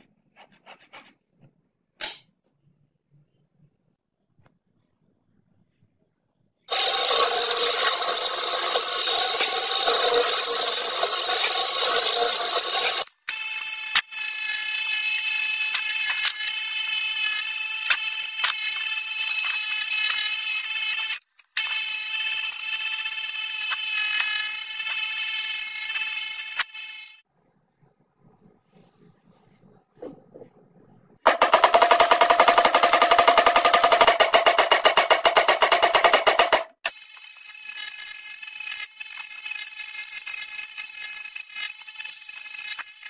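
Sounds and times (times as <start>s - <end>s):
drill press grinding whir: 6.7s - 27.2s
power tool motor whine: 6.7s - 27.2s.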